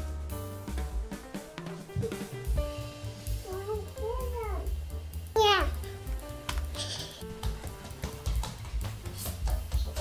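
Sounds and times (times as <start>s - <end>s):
background music with low beat: 0.0s - 10.0s.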